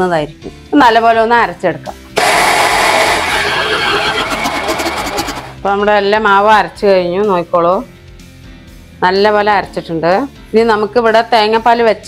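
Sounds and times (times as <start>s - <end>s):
electric mixer grinder running: 2.2s - 5.6s.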